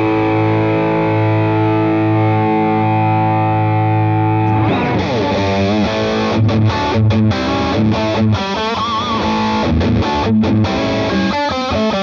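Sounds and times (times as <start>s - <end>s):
overdriven electric guitar: 0.0s - 12.0s.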